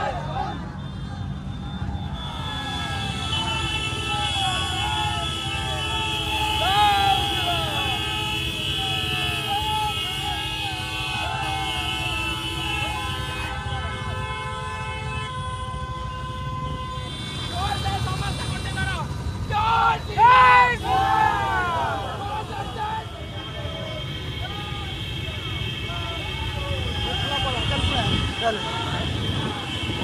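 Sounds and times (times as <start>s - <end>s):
many voices shouting: 0.0s - 1.4s, 2.1s - 13.3s, 19.5s - 27.5s
vehicle horns blaring: 0.0s - 19.2s, 19.8s - 30.0s.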